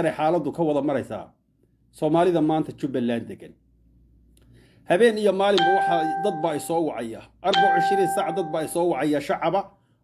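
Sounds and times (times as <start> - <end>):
man speaking: 4.9 - 9.6
bell-like ringing tone: 5.6 - 6.9, 7.5 - 9.1.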